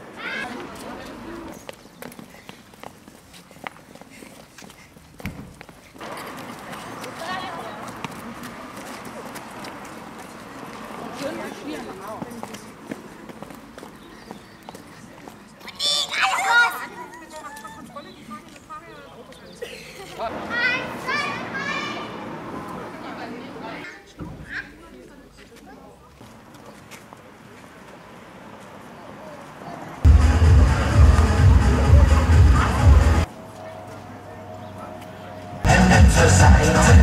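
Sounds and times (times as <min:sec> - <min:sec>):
crowd chatter: 0:00.0 - 0:05.0, 0:05.9 - 0:37.0
children's footsteps on paving stones: 0:00.0 - 0:22.8, 0:23.9 - 0:30.1
children shouting: 0:15.6 - 0:17.9, 0:20.3 - 0:22.6.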